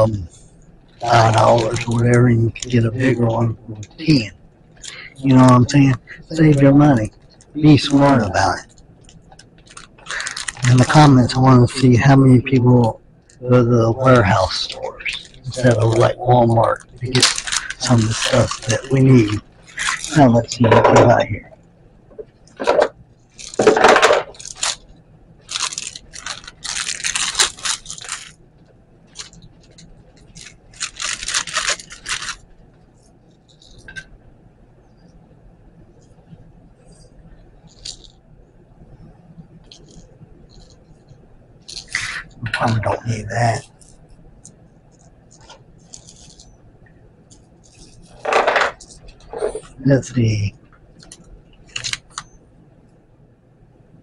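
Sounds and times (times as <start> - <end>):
plastic bag crinkling: 0.0 - 21.5, 22.2 - 32.6, 33.2 - 34.1, 36.9 - 38.2, 39.6 - 46.6, 47.3 - 52.3
plastic parts rustling: 0.9 - 21.5, 22.1 - 28.4, 29.1 - 32.5, 33.3 - 34.1, 36.8 - 38.2, 39.6 - 46.6, 47.3 - 52.3
plastic parts clattering on table: 22.5 - 24.8, 48.2 - 49.0.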